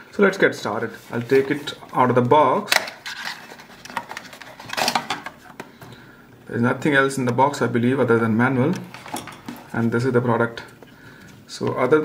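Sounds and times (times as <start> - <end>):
plastic device sliding out: 2.7 - 5.7.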